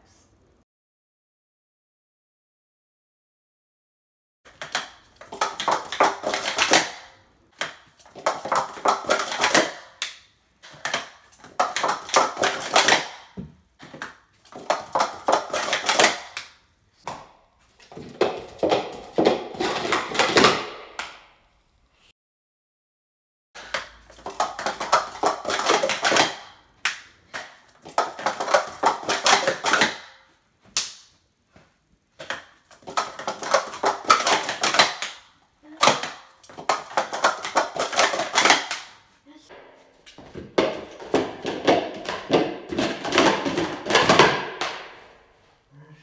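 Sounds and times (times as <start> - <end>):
plastic cups clattering: 4.5 - 16.5, 17.8 - 20.7, 23.6 - 30.3, 32.2 - 39.1, 40.2 - 44.9.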